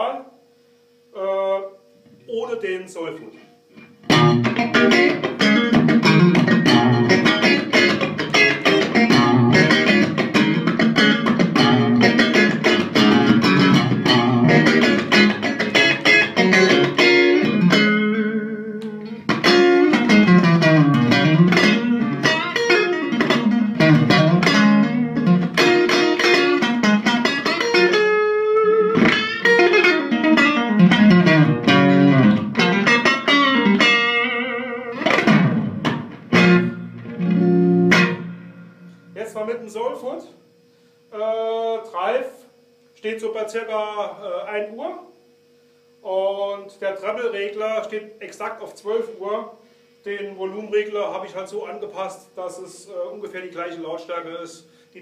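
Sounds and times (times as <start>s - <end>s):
electric guitar through amp: 3.7s - 39.5s.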